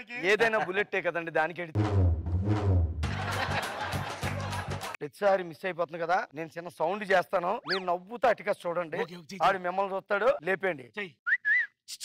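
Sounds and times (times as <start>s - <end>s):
whistled notes: 11.2s - 11.8s.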